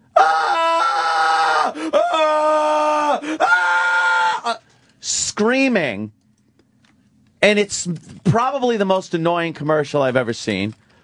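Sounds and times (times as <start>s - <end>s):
person screaming: 0.1s - 4.6s.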